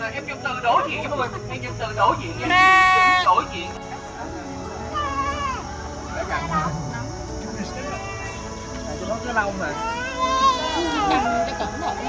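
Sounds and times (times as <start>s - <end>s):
people talking: 0.0s - 5.1s, 6.0s - 12.0s
lamb bleating: 2.4s - 3.3s.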